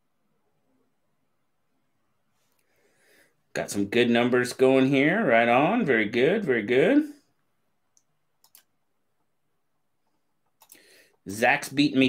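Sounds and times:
computer mouse clicks: 7.9s - 8.7s, 10.4s - 10.9s.

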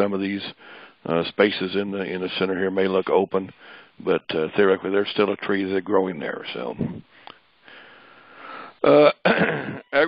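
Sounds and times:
man breathing in: 0.6s - 1.0s, 3.6s - 4.0s, 7.0s - 8.8s
man saying uh: 8.8s - 9.2s.

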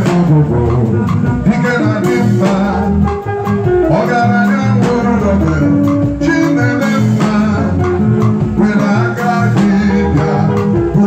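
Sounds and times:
bass guitar: 0.0s - 11.0s
drum kit beat: 0.0s - 11.0s
guitar: 0.0s - 11.0s.

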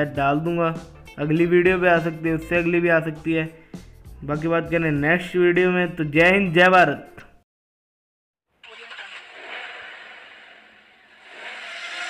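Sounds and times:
car noisy rush: 8.6s - 12.0s.

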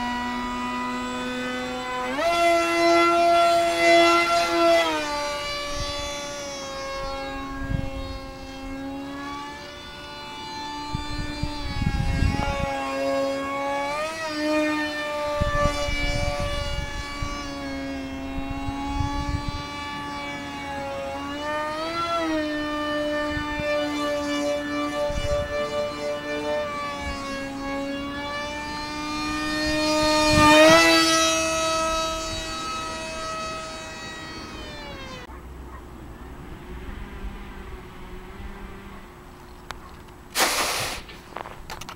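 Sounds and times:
electric motor whining: 0.0s - 35.4s, 36.1s - 41.9s
wind rumble on microphone: 1.3s - 34.8s, 36.1s - 41.9s.

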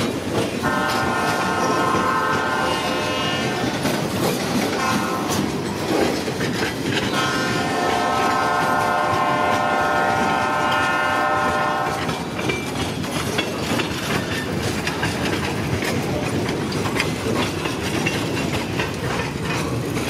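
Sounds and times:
wheel clicks on rail: 0.0s - 20.0s
locomotive horn chord: 0.6s - 3.8s, 4.7s - 5.6s, 7.1s - 12.0s.

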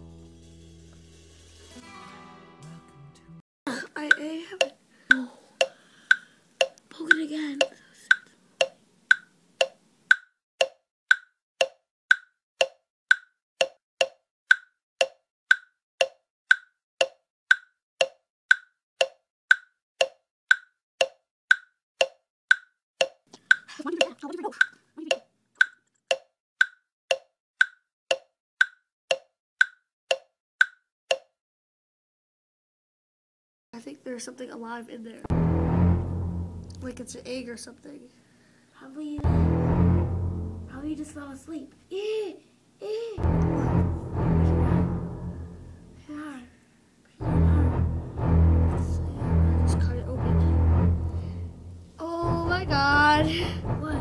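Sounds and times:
clock ticking: 3.9s - 31.3s, 35.3s - 37.6s, 39.2s - 41.6s, 43.2s - 46.0s, 47.2s - 54.0s.

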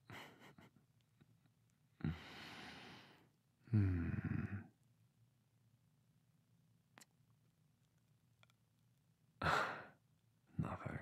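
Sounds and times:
man sighing: 2.0s - 3.0s, 3.6s - 4.7s, 9.4s - 10.0s.

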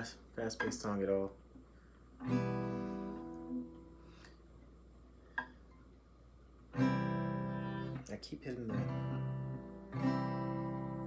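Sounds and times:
acoustic guitar chord strummed: 2.2s - 4.2s, 6.7s - 11.0s.

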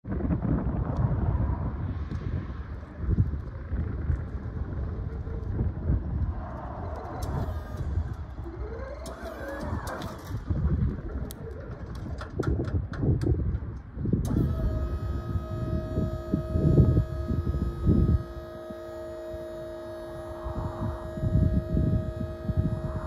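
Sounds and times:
uneven low rumble: 0.0s - 23.0s
electric lift wheels rolling on asphalt: 0.1s - 23.0s
brief wavering tone: 14.3s - 23.0s.

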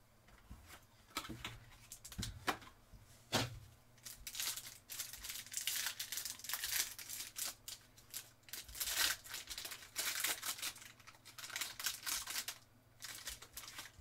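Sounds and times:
foil wrapper tearing and crinkling: 4.0s - 14.0s.

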